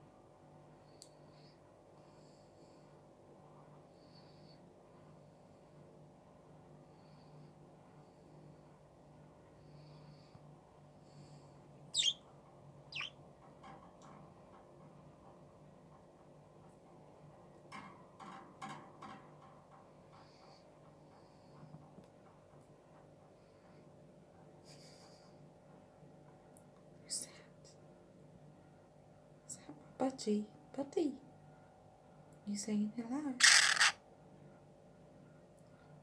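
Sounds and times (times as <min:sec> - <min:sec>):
budgerigar chirping: 0:12.0 - 0:12.2, 0:12.9 - 0:13.2, 0:33.4 - 0:33.9.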